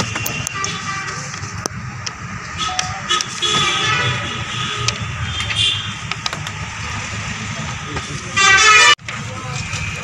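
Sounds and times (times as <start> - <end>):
street traffic: 0.0 - 10.0
vehicle horn honk: 2.6 - 5.9, 8.4 - 9.0.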